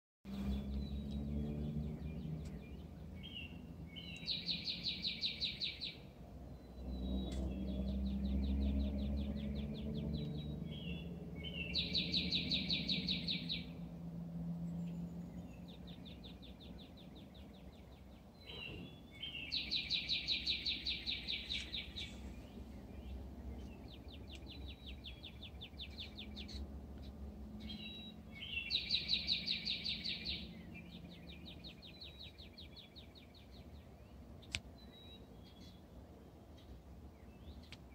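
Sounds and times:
songbird singing a fast trill: 0.3s - 13.9s, 14.7s - 37.9s
low steady rumble: 20.9s - 28.6s.

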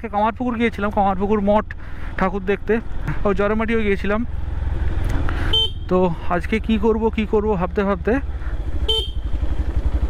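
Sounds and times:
man speaking: 0.0s - 4.3s, 5.8s - 8.3s
motorcycle engine rumble: 0.0s - 10.0s.

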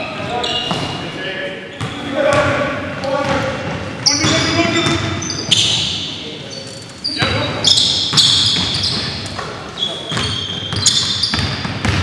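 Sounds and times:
sneakers squeaking on hardwood: 0.0s - 1.1s, 1.7s - 12.0s
basketball bouncing: 7.2s - 9.5s, 10.1s - 12.0s.

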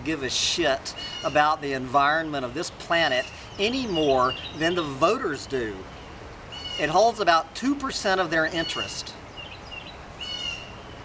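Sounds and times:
background hiss: 0.0s - 11.0s
bird chirping: 0.9s - 11.0s.

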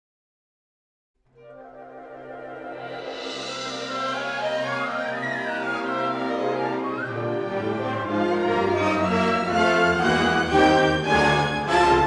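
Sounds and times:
orchestral strings playing: 1.4s - 12.0s.

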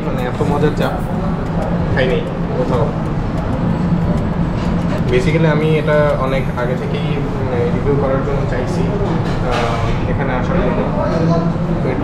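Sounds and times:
low background rumble: 0.0s - 9.0s
constant hum: 0.0s - 12.0s.

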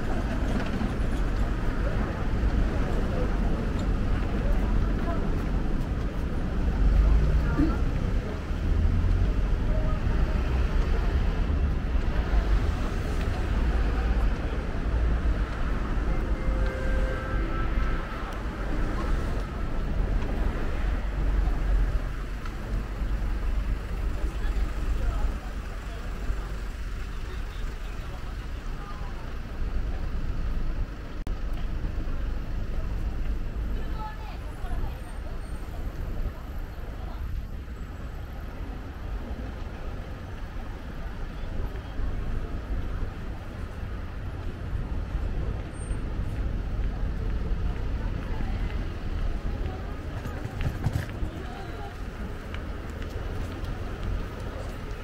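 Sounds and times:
low rumble of road traffic: 0.0s - 55.0s
passers-by talking: 0.0s - 55.0s.

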